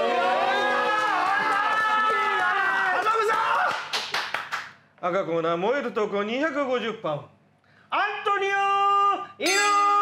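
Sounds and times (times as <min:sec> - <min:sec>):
hand claps: 0:03.2 - 0:04.8.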